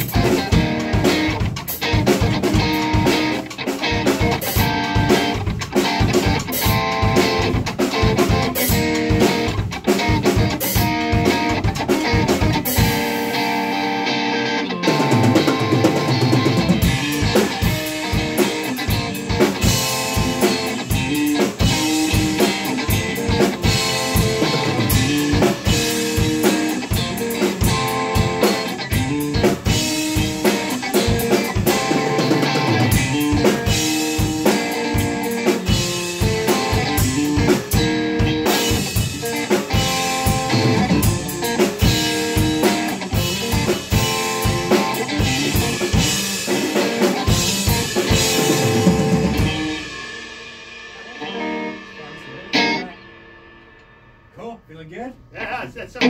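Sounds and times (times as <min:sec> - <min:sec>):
electric guitar: 0:00.0 - 0:54.3
drum kit playing: 0:00.0 - 0:56.0.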